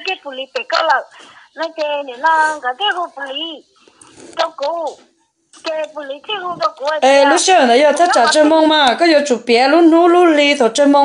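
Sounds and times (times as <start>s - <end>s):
person speaking: 0.0s - 9.0s.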